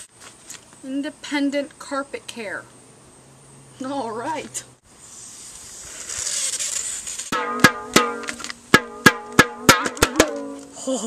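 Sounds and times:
inflatable thunder sticks banging: 0:07.3 - 0:10.7.

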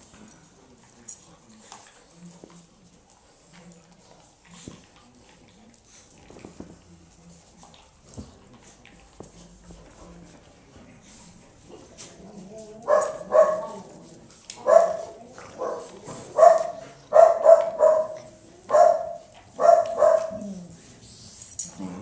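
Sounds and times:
dog barking: 0:12.9 - 0:13.8, 0:14.6 - 0:20.4.

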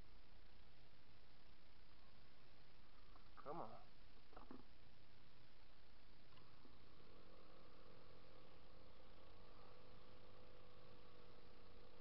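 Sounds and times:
faint scooter engine running: 0:05.2 - 0:12.0.

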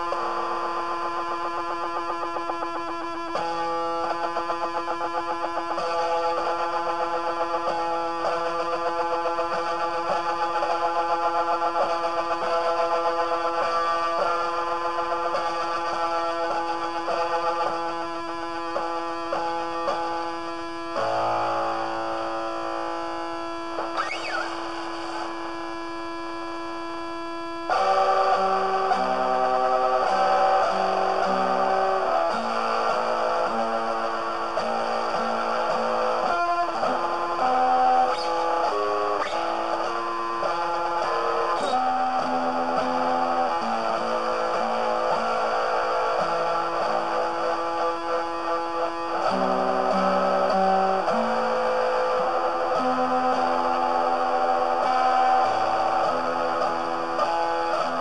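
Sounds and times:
instrumental guitar music: 0:00.0 - 0:58.0.

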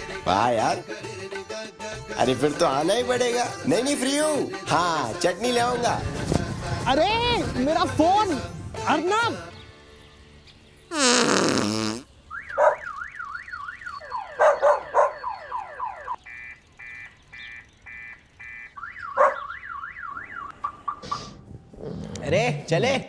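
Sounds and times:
car alarm warbling and beeping: 0:12.3 - 0:21.1.

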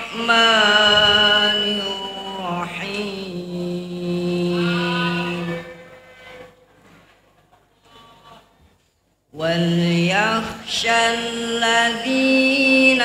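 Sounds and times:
male voice chanting recitation: 0:00.0 - 0:05.7, 0:09.4 - 0:13.0.

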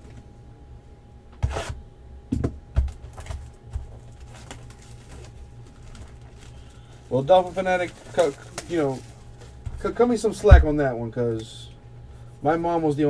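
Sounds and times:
low steady hum: 0:00.0 - 0:13.0
shrink wrap crinkling and ripping: 0:03.1 - 0:10.4
knife slitting shrink wrap: 0:07.2 - 0:09.2.

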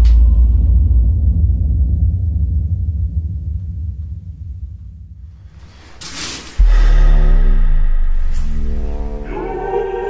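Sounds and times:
deep bass hit: 0:06.6 - 0:09.2
sustained orchestral chord: 0:06.8 - 0:10.0.

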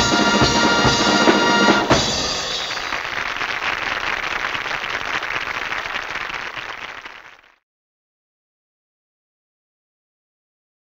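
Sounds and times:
audience applauding: 0:01.7 - 0:07.6.

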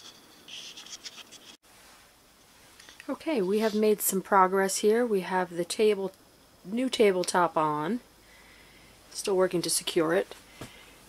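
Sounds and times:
faint scratchy rustling: 0:00.0 - 0:04.0
faint hiss: 0:01.6 - 0:11.0.

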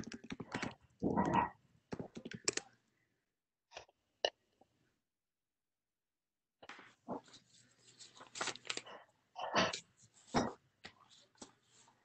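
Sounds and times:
paper rustling and crinkling: 0:07.2 - 0:09.0.

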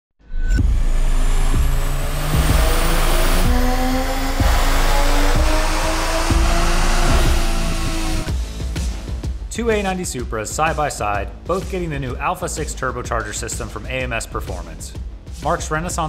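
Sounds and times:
car engine revving on a dyno: 0:00.6 - 0:08.3
music with a steady beat: 0:00.6 - 0:16.0.

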